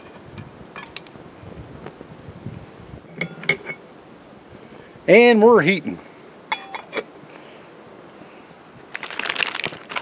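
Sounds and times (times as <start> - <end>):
metal lid clinking on pot: 3.1 - 3.8, 6.5 - 7.1
foil crinkling: 8.8 - 10.0.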